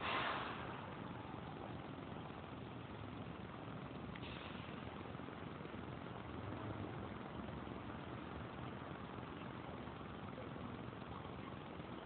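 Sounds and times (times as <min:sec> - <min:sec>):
city street traffic hum: 0:00.0 - 0:12.0.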